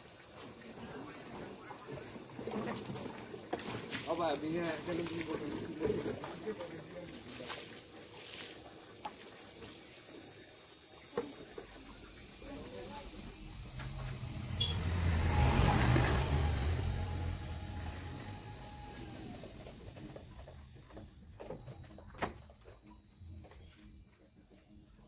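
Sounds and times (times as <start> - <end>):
vehicle engine rumble passing: 12.3 - 21.0.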